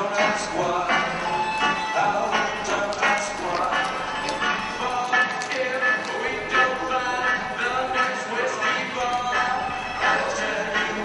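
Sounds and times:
music with steady beat: 0.0s - 11.0s.

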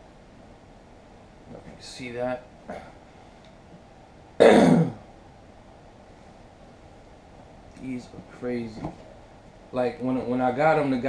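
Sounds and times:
man clearing throat: 4.4s - 5.0s.

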